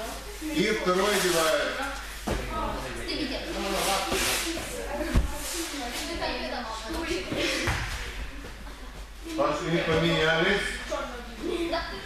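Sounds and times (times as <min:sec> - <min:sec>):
children talking: 0:01.6 - 0:12.0.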